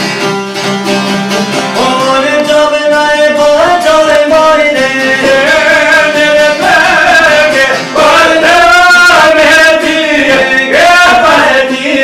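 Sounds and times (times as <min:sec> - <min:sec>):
lutes strummed and plucked: 0:00.0 - 0:12.0
man singing: 0:01.7 - 0:12.0.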